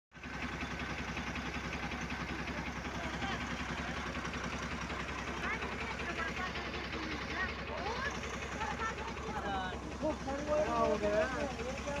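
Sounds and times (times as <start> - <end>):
bus diesel engine idling: 0.2 - 12.0
faint voices talking: 1.9 - 12.0.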